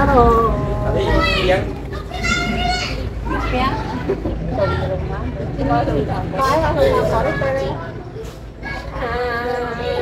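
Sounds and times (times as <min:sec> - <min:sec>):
women talking and calling out: 0:00.0 - 0:10.0.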